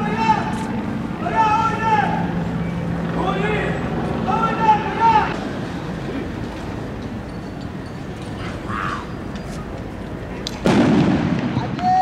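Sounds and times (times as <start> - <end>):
vehicle engines humming: 0.0 - 11.8
person shouting calls: 8.4 - 9.1, 11.7 - 12.0.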